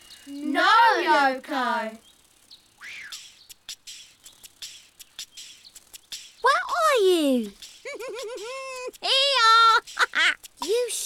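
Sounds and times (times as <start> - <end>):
quick sharp crackles and clicks: 2.0 - 11.0
squeaky cartoon chirp: 2.8 - 6.8.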